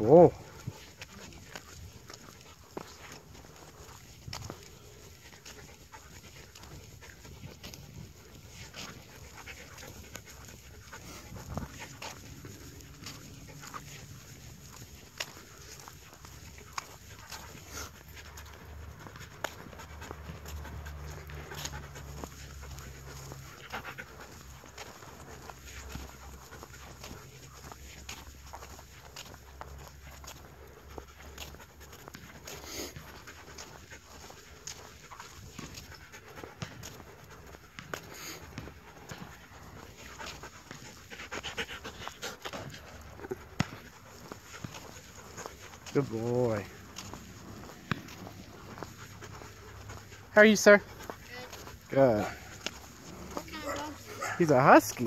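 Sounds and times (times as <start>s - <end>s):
dog panting: 0.0s - 55.0s.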